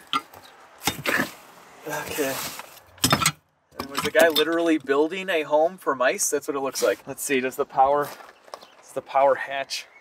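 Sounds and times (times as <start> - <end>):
rustling: 0.0 - 3.0
metal jack handle clattering: 3.0 - 4.8.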